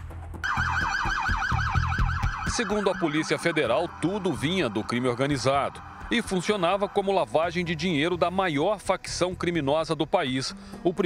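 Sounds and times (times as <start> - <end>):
police siren yelp: 0.4 - 8.0.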